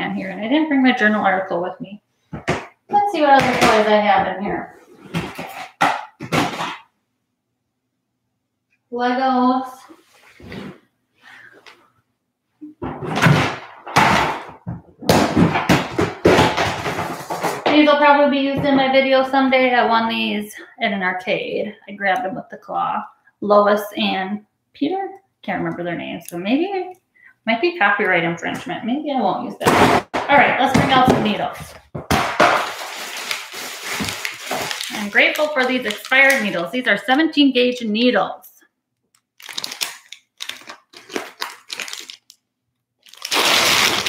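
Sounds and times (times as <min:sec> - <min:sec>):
plastic bin contents knocking and rustling: 0:02.3 - 0:06.9, 0:12.8 - 0:17.9, 0:29.6 - 0:37.0
items clattering against plastic: 0:05.0 - 0:06.9, 0:12.8 - 0:17.9, 0:29.6 - 0:37.1, 0:39.4 - 0:42.4
plastic packaging crinkling: 0:32.1 - 0:37.2, 0:39.2 - 0:44.0.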